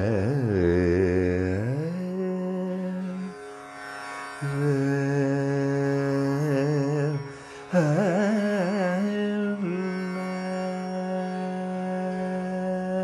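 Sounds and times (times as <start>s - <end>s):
man singing wordless phrases: 0.0s - 3.3s, 4.4s - 13.0s.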